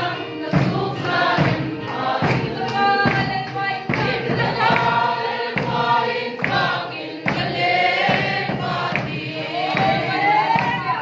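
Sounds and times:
congregation singing a worship song: 0.0s - 11.0s
sharp beat keeping time: 0.0s - 11.0s.

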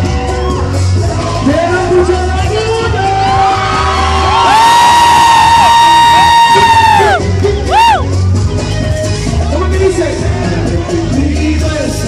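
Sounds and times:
crowd whooping: 0.0s - 2.4s, 3.2s - 8.2s
bass beat: 0.0s - 12.0s
live concert music: 0.0s - 12.0s.

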